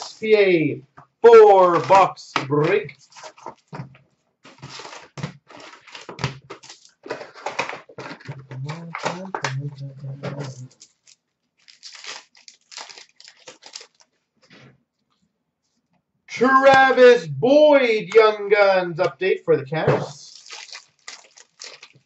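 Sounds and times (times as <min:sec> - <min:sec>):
foil wrappers crinkling: 0:02.9 - 0:03.8, 0:04.4 - 0:09.3, 0:10.4 - 0:14.2, 0:20.2 - 0:22.0.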